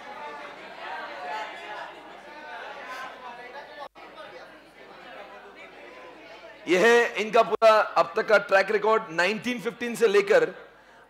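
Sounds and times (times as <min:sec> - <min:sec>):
lecturer speaking: 0:06.7 - 0:10.7.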